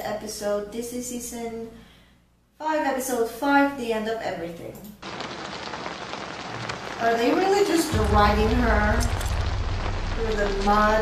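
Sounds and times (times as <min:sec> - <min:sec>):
steady rain falling: 0:05.0 - 0:11.0.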